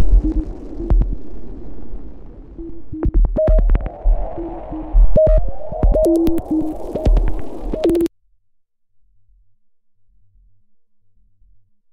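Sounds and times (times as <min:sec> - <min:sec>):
kick drum thumps: 0:00.0 - 0:01.2, 0:02.6 - 0:03.9
synth line: 0:00.0 - 0:08.1.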